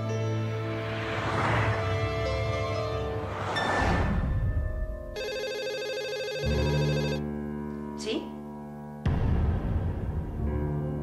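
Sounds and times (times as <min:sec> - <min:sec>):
dramatic music: 0:00.0 - 0:05.3, 0:08.9 - 0:11.0
telephone ringing: 0:05.2 - 0:07.2.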